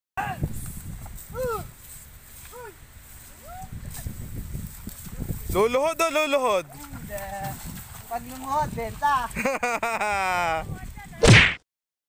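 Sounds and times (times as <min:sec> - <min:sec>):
person shouting calls: 0:00.2 - 0:00.4, 0:01.3 - 0:01.7, 0:02.5 - 0:02.8.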